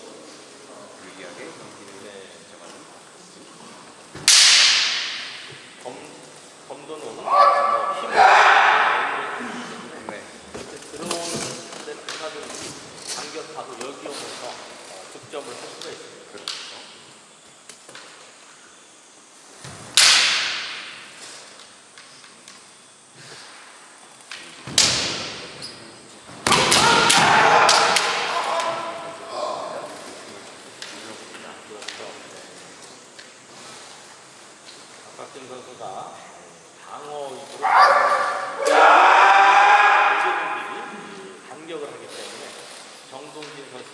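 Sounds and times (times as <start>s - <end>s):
bamboo swords clacking: 4.2s - 5.5s, 19.9s - 21.2s
sharp strike cracks: 4.2s - 5.6s, 20.0s - 21.0s
fighters shouting: 7.2s - 9.8s, 26.5s - 30.0s, 37.6s - 41.3s.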